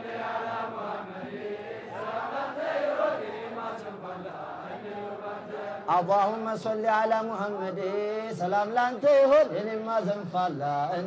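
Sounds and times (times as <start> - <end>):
men chanting devotional chant: 0.0 - 11.0.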